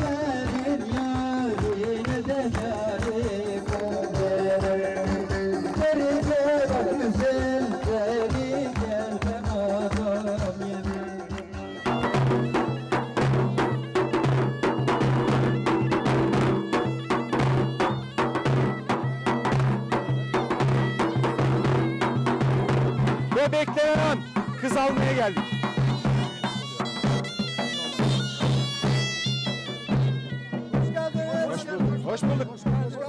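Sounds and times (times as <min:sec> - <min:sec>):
reedy shawm melody: 0:00.0 - 0:33.0.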